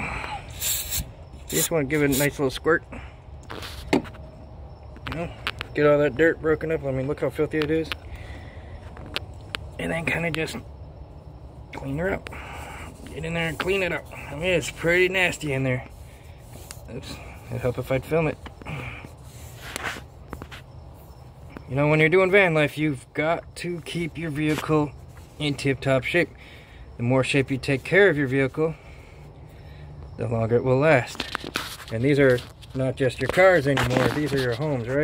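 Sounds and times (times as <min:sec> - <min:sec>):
aerosol spray hiss: 0:00.5 - 0:02.3.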